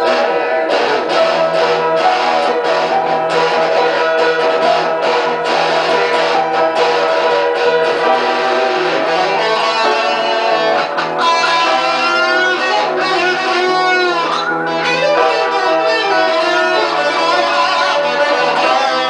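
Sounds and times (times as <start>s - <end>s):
electric guitar solo: 0.0s - 19.0s
upright piano chords: 0.0s - 19.0s.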